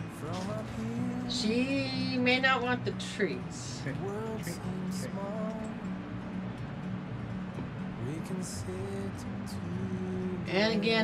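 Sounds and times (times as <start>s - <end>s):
steady low hum: 0.0s - 11.0s
woman calling in sing-song voice: 1.3s - 4.6s, 10.5s - 11.0s.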